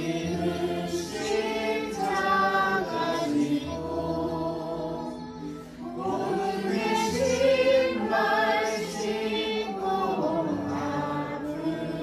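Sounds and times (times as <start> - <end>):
backing music: 0.0 - 12.0
voices singing in chorus: 0.0 - 12.0.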